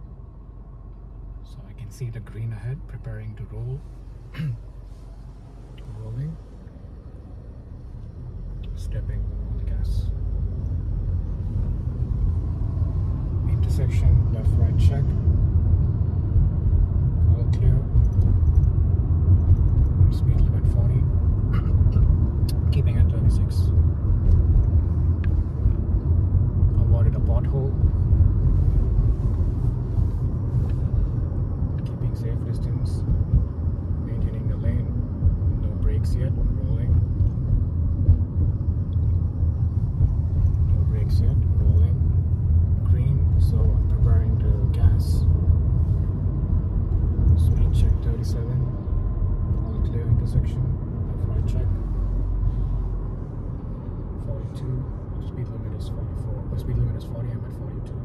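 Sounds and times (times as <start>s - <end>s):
car tyre and engine rumble: 0.0s - 58.0s.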